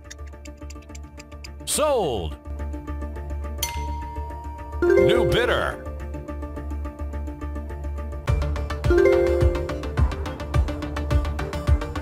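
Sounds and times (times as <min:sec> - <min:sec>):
background music: 0:00.0 - 0:12.0
chime with ringing tone: 0:03.6 - 0:06.1, 0:08.9 - 0:10.0.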